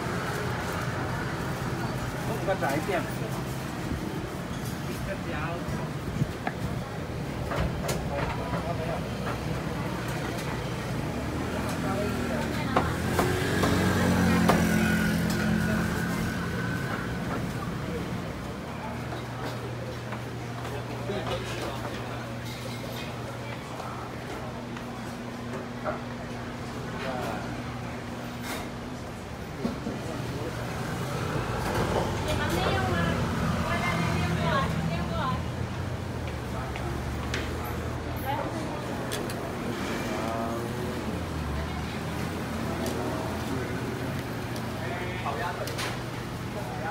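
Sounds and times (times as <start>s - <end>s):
street traffic rumble: 0.0s - 46.9s.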